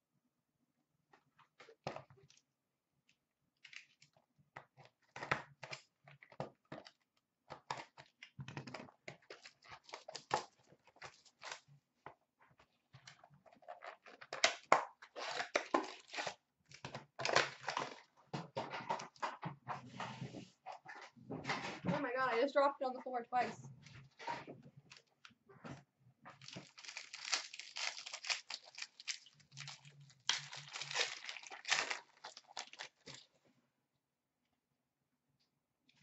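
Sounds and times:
foil wrappers crinkling: 15.2 - 18.1, 26.4 - 33.3.

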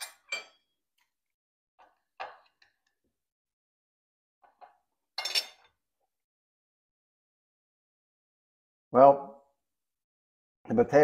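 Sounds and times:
cutlery clatter: 0.0 - 0.7, 4.4 - 5.8
cutlery clinking on plate: 4.5 - 5.8.

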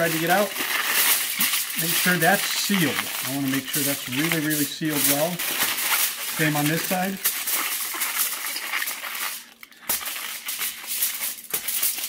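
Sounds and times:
aluminium foil crinkling: 0.0 - 12.0.

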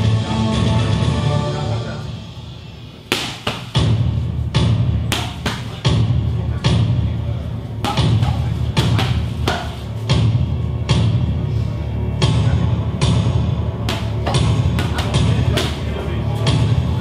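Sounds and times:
music: 0.0 - 17.0
strikes smacking on pads: 3.1 - 6.1, 7.8 - 9.9, 13.8 - 15.9.

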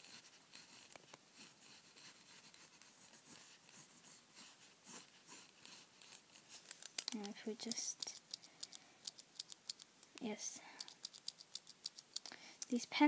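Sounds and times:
pencil scratching on paper: 0.0 - 9.8.

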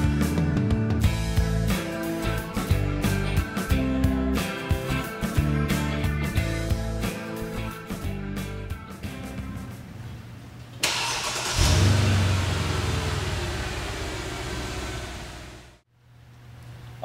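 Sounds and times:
car engine starting and revving: 10.8 - 15.8.

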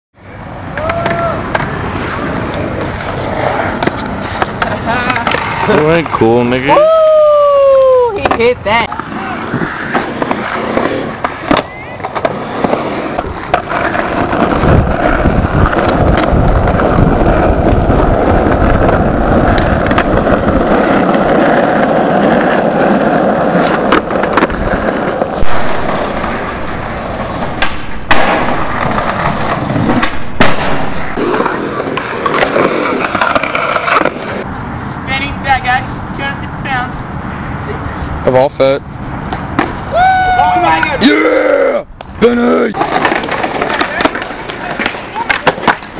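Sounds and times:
skateboard wheels rolling on pavement: 0.2 - 45.9
skateboard clacking on ground: 0.6 - 6.8, 8.1 - 34.5, 40.6 - 41.1, 42.0 - 45.9.

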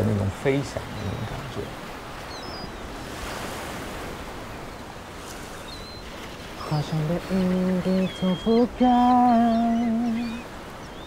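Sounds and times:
sea waves washing: 0.0 - 11.0
man singing: 6.6 - 10.4.

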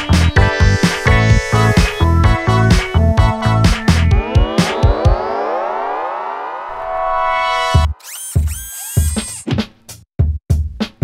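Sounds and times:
rising synth tone sweep: 0.3 - 8.4.

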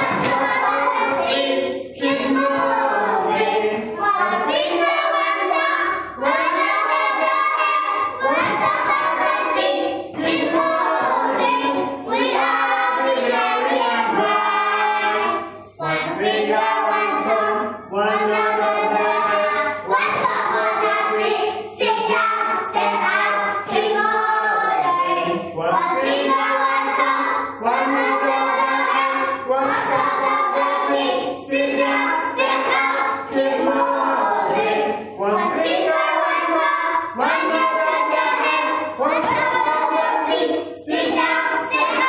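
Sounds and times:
children singing: 0.0 - 42.0.

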